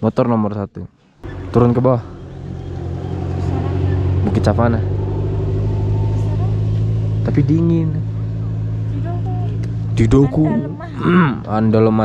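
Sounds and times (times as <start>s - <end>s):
engine idling: 1.2s - 12.0s.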